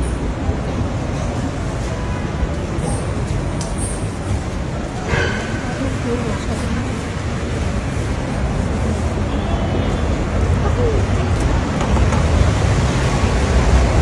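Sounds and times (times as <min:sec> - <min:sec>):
low traffic rumble: 0:00.0 - 0:14.0.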